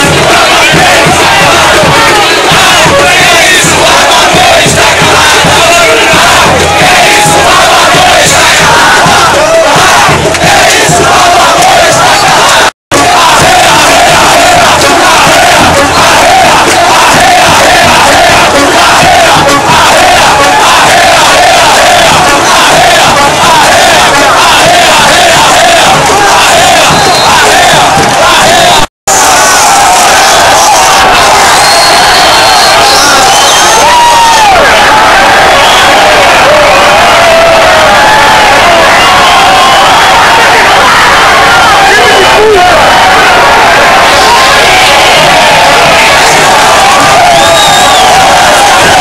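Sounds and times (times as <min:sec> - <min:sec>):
stadium crowd chanting: 0:00.0 - 0:49.0.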